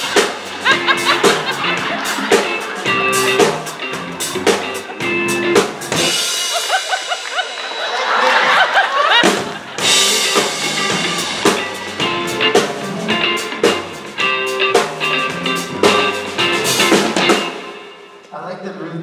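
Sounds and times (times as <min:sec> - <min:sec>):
crowd shouting and shrieking: 0:00.0 - 0:05.3, 0:06.1 - 0:12.2
crowd laughing: 0:00.0 - 0:17.7
rock band playing: 0:00.0 - 0:18.3.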